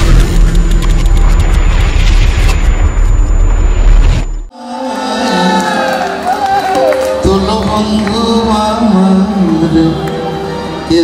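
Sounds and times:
deep bass rumble: 0.0s - 4.5s
sudden cinematic hit: 0.0s - 4.5s.

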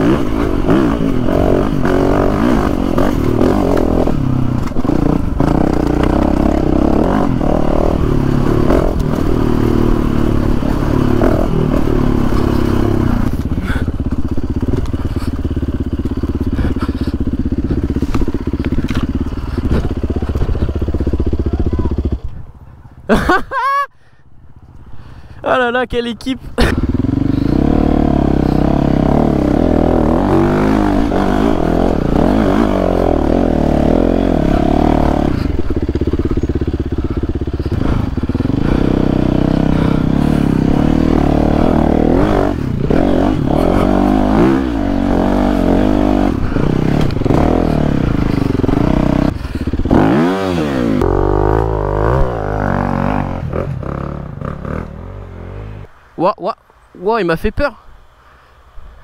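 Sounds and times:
motorcycle engine revving: 0.0s - 23.4s, 26.4s - 56.1s.

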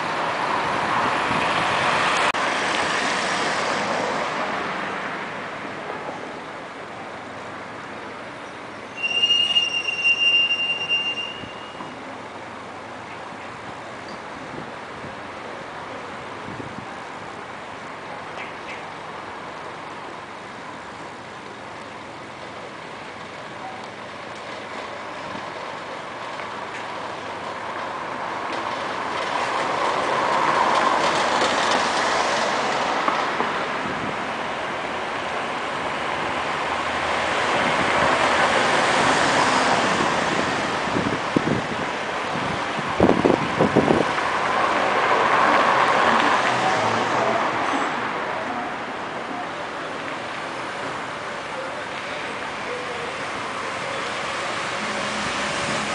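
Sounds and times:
city bus humming: 0.0s - 55.9s
road traffic: 0.0s - 55.9s
vehicles passing close: 0.0s - 55.9s.

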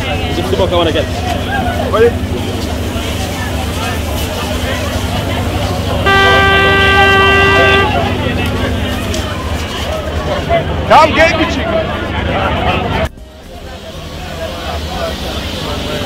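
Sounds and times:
crowd chatter: 0.0s - 16.0s
horn blast: 6.0s - 8.6s.

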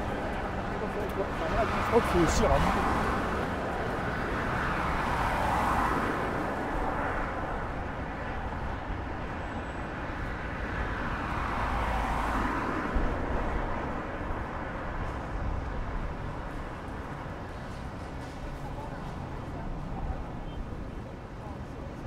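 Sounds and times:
city traffic hum: 0.0s - 22.0s
vehicles passing close by: 0.0s - 22.0s.

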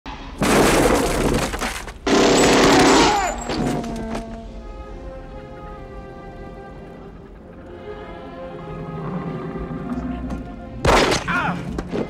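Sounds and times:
things breaking and shattering: 0.4s - 4.2s, 10.8s - 12.0s.

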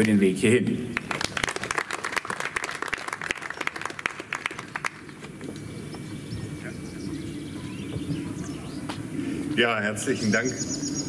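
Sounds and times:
low background murmur: 3.2s - 10.9s
faint bird chirps: 5.6s - 9.4s, 10.2s - 11.0s.

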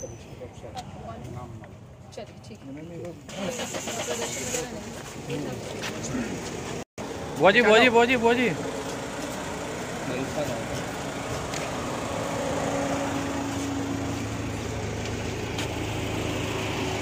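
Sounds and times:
street background noise: 0.0s - 17.0s
car engine idling: 3.2s - 17.0s.

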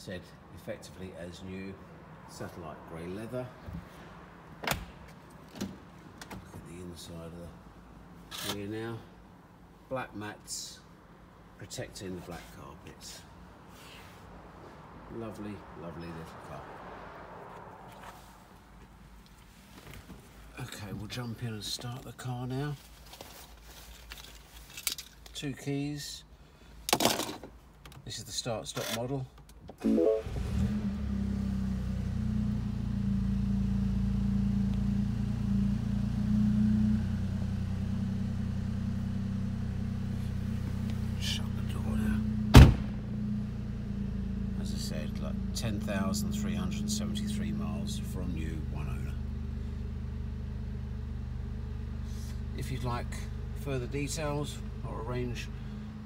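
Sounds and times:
faint rustling: 22.7s - 25.3s
car engine idling: 37.3s - 56.0s.

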